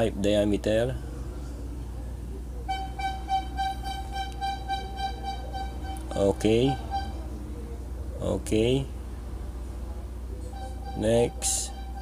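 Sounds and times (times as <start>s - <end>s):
steady low hum: 0.0s - 12.0s
high-pitched horn-like tone: 2.7s - 7.4s, 10.4s - 12.0s.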